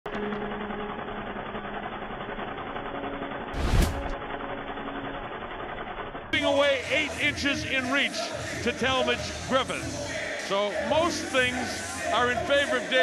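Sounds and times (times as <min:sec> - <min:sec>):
low humming tones: 0:00.1 - 0:06.4
noisy drone: 0:00.1 - 0:08.6
whoosh hit with deep boom: 0:03.6 - 0:04.2.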